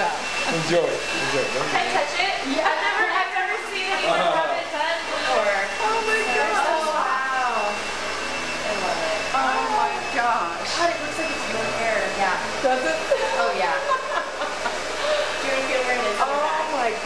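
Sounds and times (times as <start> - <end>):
women exclaiming and laughing: 1.8 - 7.5, 12.6 - 17.0.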